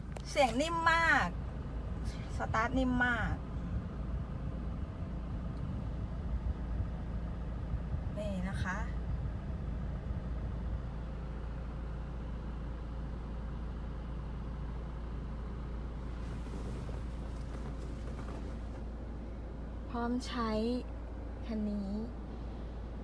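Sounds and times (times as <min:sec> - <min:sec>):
diesel engine idling: 0:00.0 - 0:23.0.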